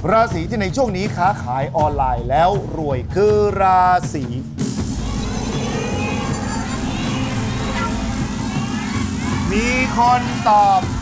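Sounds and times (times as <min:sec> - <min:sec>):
steady low rumble: 0:04.9 - 0:09.3.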